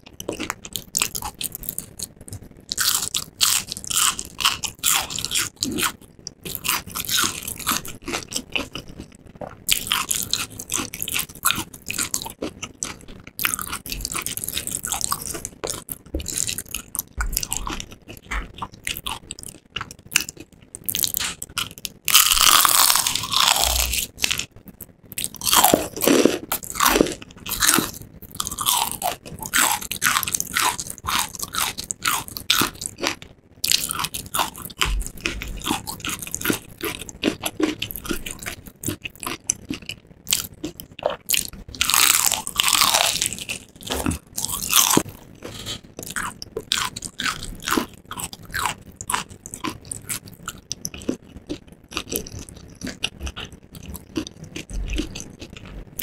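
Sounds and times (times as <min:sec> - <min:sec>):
crunchy chewing of fried chicken: 0:00.0 - 0:56.0.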